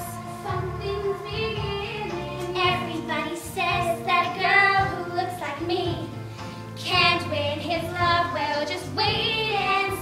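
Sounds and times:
girl singing a show tune: 0.0s - 6.2s, 6.8s - 10.0s
musical accompaniment: 0.0s - 10.0s.

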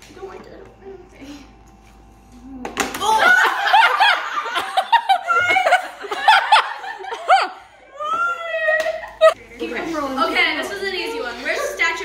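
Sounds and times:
girls and women laughing: 3.0s - 9.9s.

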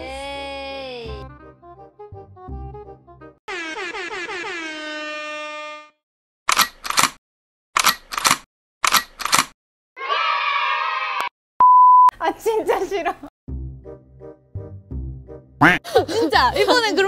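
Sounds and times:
air horn blasts: 3.5s - 6.0s.

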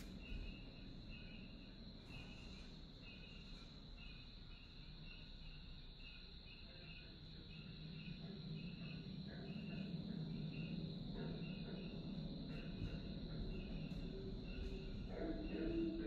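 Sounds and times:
crickets and insects chirping: 0.0s - 16.0s.

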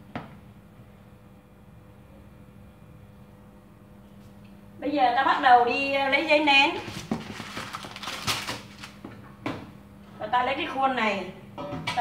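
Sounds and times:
baking paper rustling: 6.6s - 9.1s.

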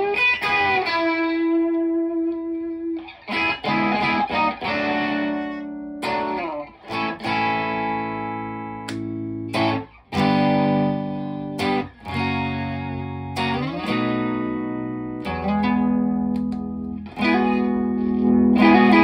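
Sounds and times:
overdriven electric guitar chords: 0.0s - 19.0s.

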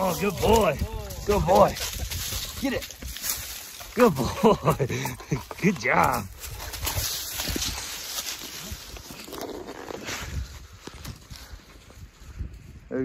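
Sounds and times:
footsteps through dry leaves: 0.0s - 4.8s, 6.0s - 12.2s.

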